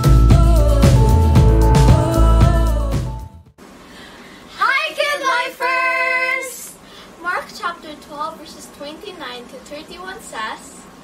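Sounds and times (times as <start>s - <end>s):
girls singing a greeting: 4.6s - 6.8s.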